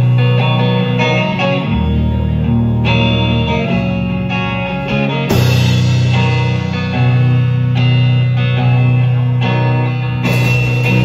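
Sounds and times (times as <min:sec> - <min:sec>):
drums: 0:00.0 - 0:11.0
electric guitar playing: 0:00.0 - 0:11.0.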